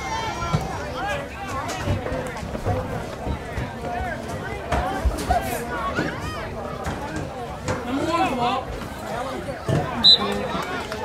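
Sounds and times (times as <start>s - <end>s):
crowd talking and calling: 0.0s - 11.0s.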